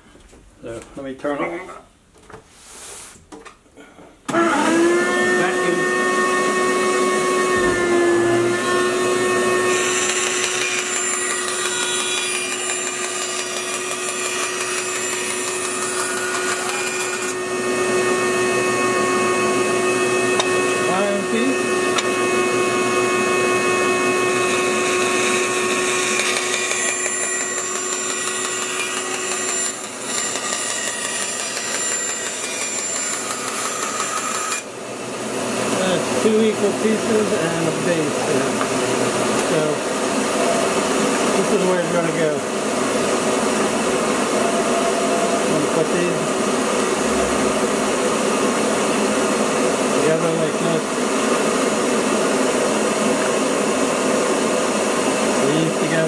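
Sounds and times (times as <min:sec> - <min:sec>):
bandsaw cutting wood: 0:04.3 - 0:51.6.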